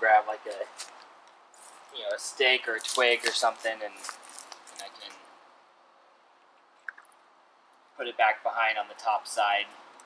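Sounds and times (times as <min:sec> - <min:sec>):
faint outdoor background hiss: 0:00.0 - 0:10.0.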